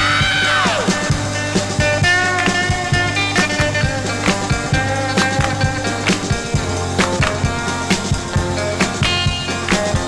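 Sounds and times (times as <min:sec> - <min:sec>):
instrumental pop music from vinyl: 0:00.0 - 0:10.0
steady drum beat: 0:00.0 - 0:10.0.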